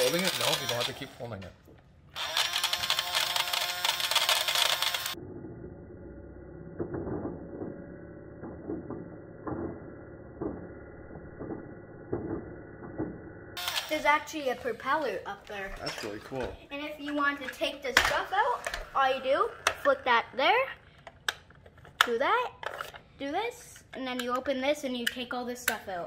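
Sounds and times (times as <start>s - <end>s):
toy vacuum motor whirring: 0.0s - 1.4s, 2.2s - 5.2s, 13.6s - 14.9s.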